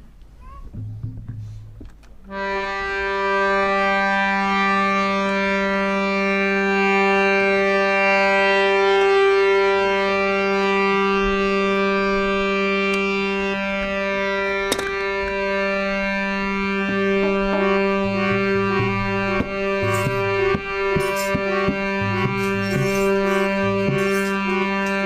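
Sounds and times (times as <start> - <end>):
harmonium drone chord: 2.3 - 25.0
sharp knock: 19.4 - 25.0.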